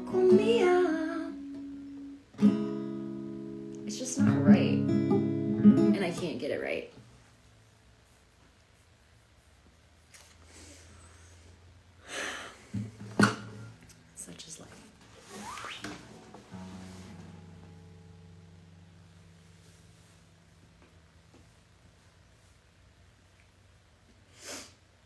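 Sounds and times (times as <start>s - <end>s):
guitar rustles and knocks: 14.7s - 17.8s.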